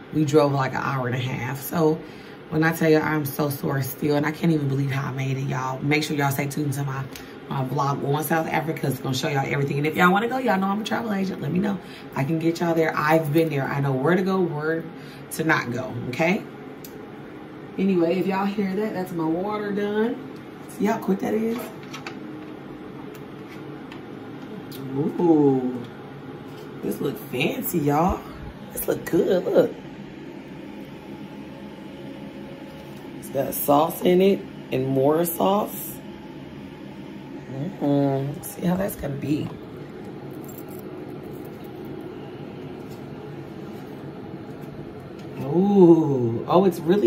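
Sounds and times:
electric kettle soft rush: 0.0 - 47.0
steady low hum: 0.0 - 47.0.

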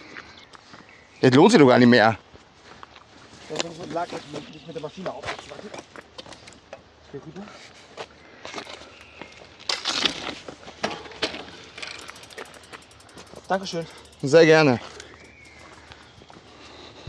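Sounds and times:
bicycle knocks and rattles: 9.7 - 15.8.

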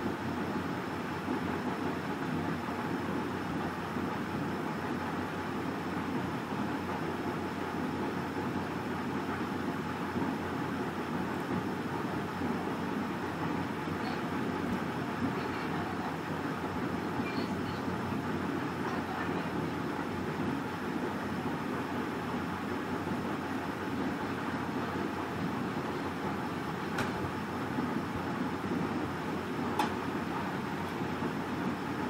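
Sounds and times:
steady rumble and hiss: 0.0 - 32.0.

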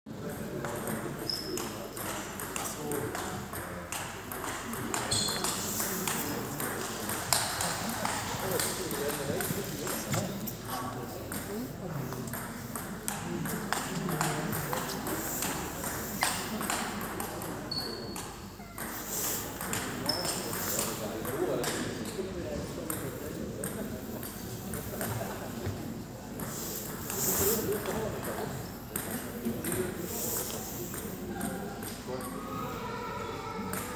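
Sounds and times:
spectators chattering: 0.1 - 33.9.

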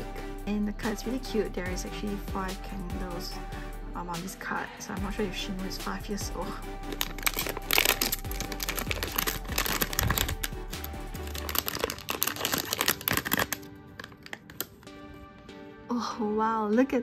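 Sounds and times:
background music: 0.0 - 17.0
foil bag crinkling: 6.8 - 14.9.

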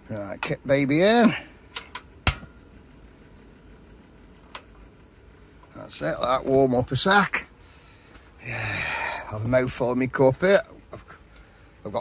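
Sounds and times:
gas stove igniter click: 1.7 - 2.6.

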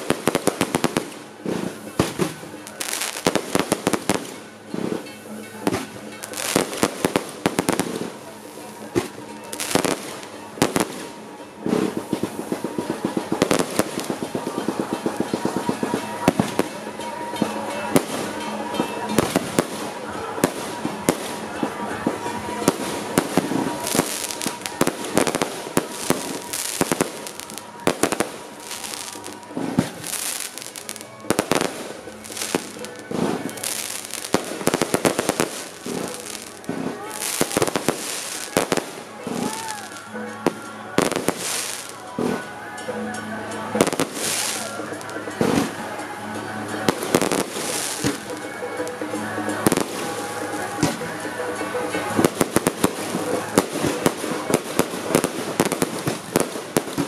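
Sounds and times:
firework bangs: 0.0 - 42.8, 46.6 - 57.0
firecrackers crackling: 0.0 - 57.0.

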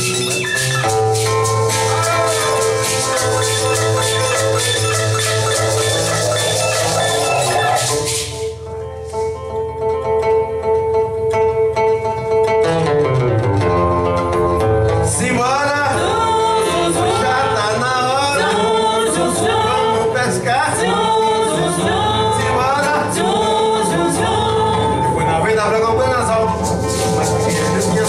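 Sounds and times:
horns: 0.0 - 8.7
shakers: 0.0 - 9.4, 26.5 - 28.0
drums: 0.0 - 25.6, 26.2 - 28.0
keyboard: 0.0 - 28.0
people singing: 15.1 - 25.3.

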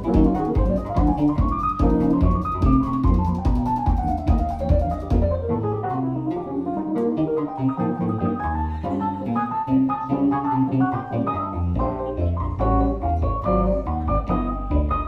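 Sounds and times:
low bass notes: 0.0 - 15.0.

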